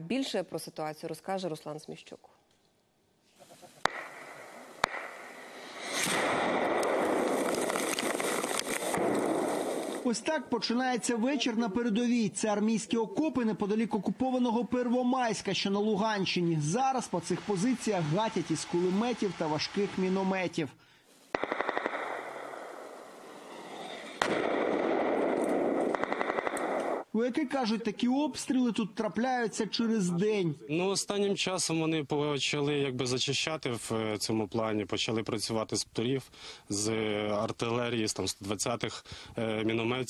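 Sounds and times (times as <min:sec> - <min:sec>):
gunshots: 0:03.8 - 0:10.1, 0:21.3 - 0:27.1
mortar blast: 0:03.8 - 0:10.6, 0:21.3 - 0:27.1
machine-gun fire bursts: 0:21.3 - 0:22.9, 0:24.2 - 0:27.0.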